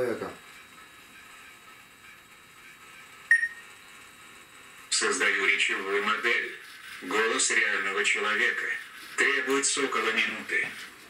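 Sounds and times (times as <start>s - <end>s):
short electronic beep: 3.3s - 3.6s.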